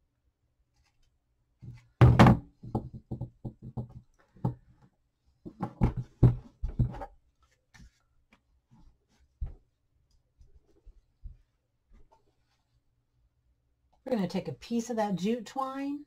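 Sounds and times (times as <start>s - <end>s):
objects knocking on tabletop: 2.0s - 4.6s, 5.5s - 7.1s.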